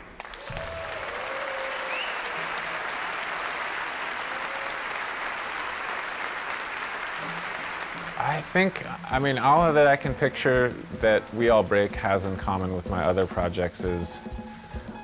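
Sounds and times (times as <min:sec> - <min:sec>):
audience applauding: 0:00.0 - 0:09.7
crowd whistling and calling: 0:00.3 - 0:06.0.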